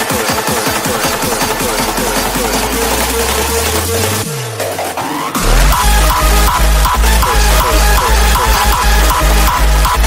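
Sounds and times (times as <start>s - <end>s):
hardstyle dance music: 0.0s - 10.0s
low bass note: 5.4s - 8.6s
kick drum roll: 5.4s - 8.8s.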